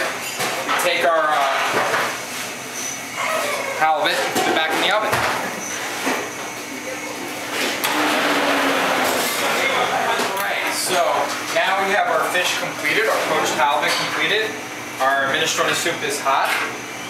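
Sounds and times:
steady noisy hum: 0:00.0 - 0:17.0.

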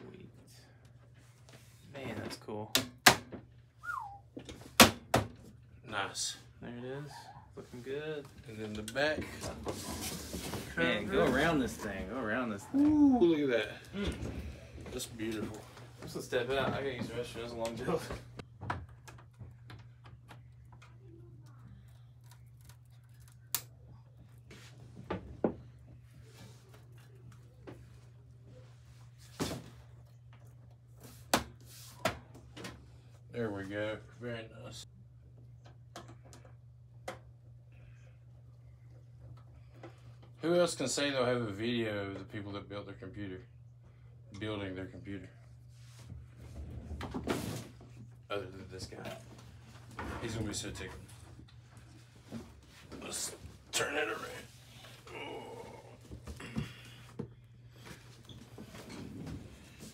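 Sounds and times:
steady low hum: 0:05.3 - 0:59.9.

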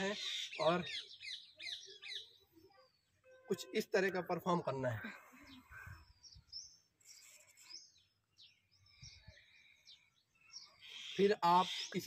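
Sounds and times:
faint bird chirps: 0:00.0 - 0:03.8, 0:05.0 - 0:12.0.

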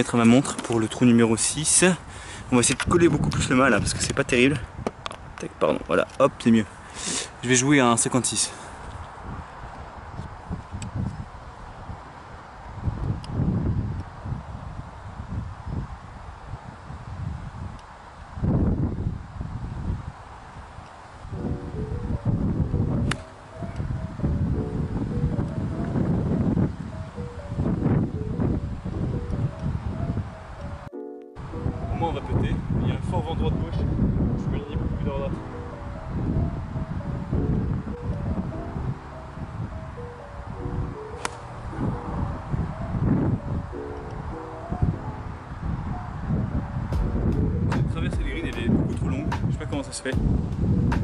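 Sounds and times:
wind buffeting microphone: 0:00.0 - 0:51.0
background music: 0:21.4 - 0:33.7, 0:35.3 - 0:50.3.

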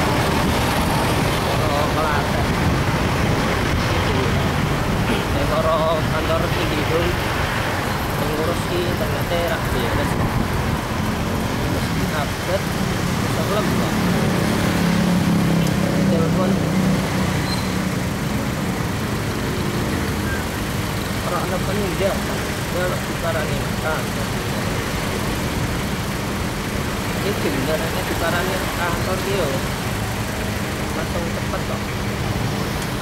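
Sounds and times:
motorcycle engines at low speed: 0:00.0 - 0:33.0.

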